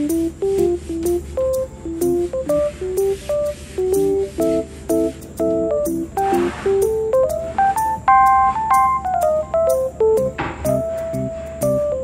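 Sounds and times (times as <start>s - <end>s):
keyboard melody: 0.0s - 12.0s.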